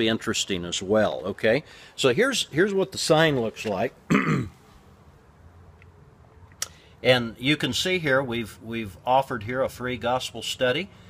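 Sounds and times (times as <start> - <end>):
man clearing his throat: 4.1 - 4.6.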